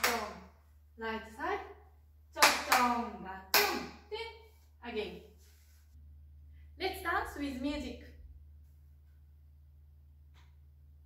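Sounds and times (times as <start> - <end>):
sharp hand claps: 0.0 - 0.4, 2.4 - 4.0.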